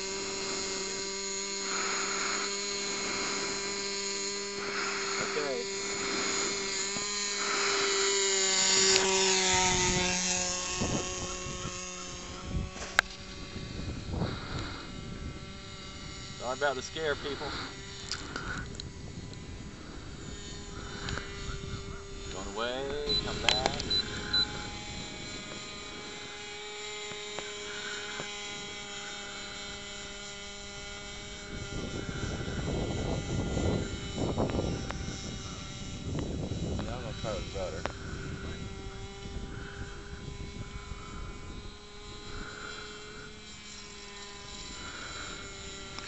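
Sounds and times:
model aircraft motor droning: 0.0 - 46.0.

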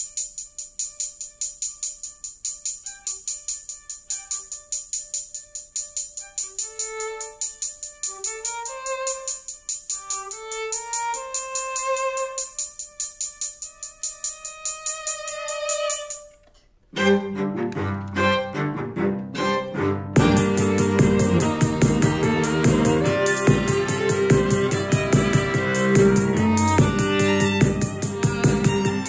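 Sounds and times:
drum machine ticking: 0.0 - 16.4, 20.2 - 29.0
violin playing: 0.1 - 29.0.

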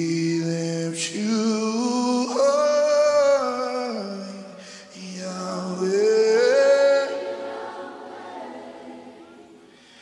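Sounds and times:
choir singing worship song: 4.9 - 9.8.

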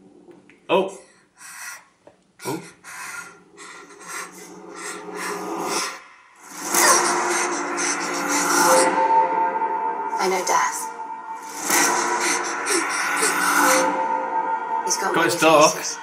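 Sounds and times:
heavy rasping breathing: 1.0 - 9.0, 11.5 - 14.1
loud music with long held notes: 10.5 - 16.0.

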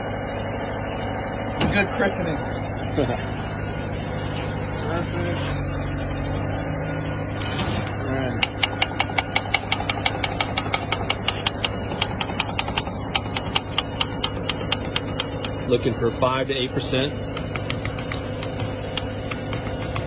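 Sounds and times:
truck engine idling hum: 0.0 - 20.0
hand pump clicking: 8.4 - 15.6.

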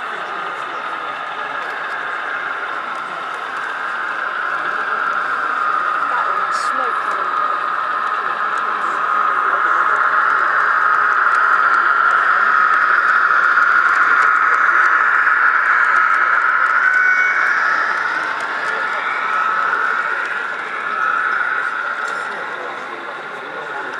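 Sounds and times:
crowd chatter: 0.0 - 23.9
model train running on rails: 0.0 - 23.9.

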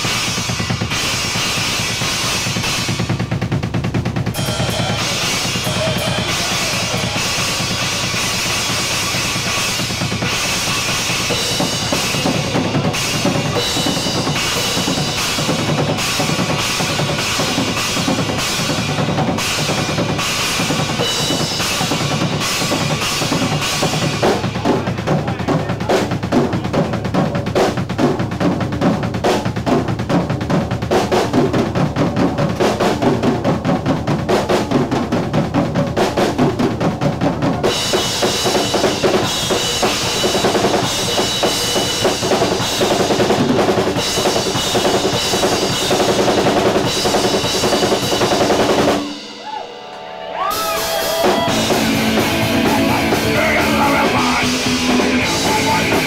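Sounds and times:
rock band playing: 0.0 - 30.0, 31.8 - 56.0
loud drum kit: 0.0 - 56.0.

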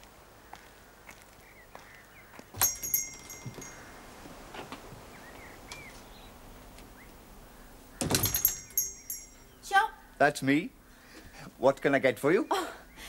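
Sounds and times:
shop door bell jangling: 2.6 - 3.9, 8.0 - 9.6.

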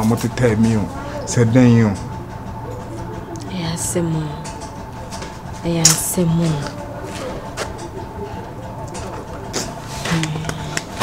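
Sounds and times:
faint continuous hum: 0.0 - 11.0.

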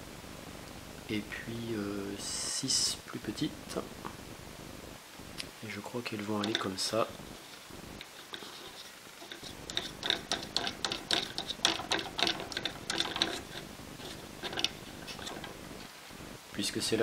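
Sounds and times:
small parts clicking and tapping: 6.2 - 15.9.

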